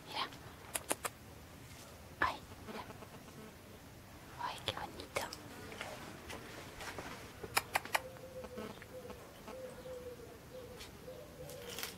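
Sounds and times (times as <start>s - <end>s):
person whispering: 0.0s - 1.1s, 2.2s - 3.0s, 4.4s - 6.1s
short sharp clicks: 7.5s - 8.0s.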